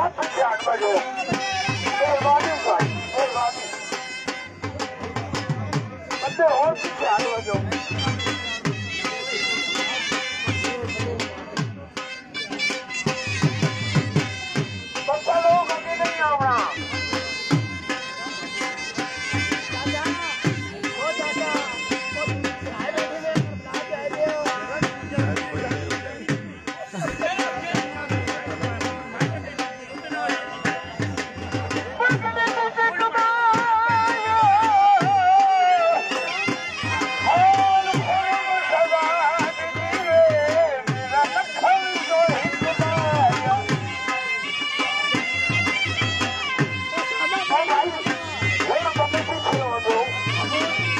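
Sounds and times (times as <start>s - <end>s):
dhol drum beating: 0.0s - 50.9s
wavering wind instrument melody: 0.0s - 50.9s.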